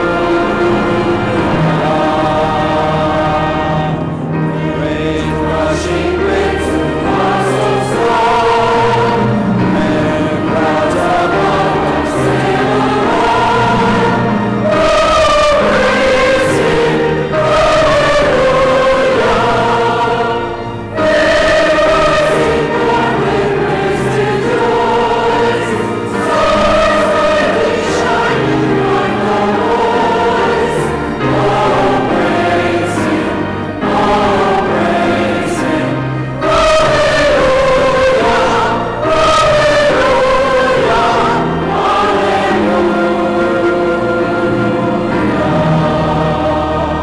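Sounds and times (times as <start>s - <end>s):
choir singing in church: 0.0s - 47.0s.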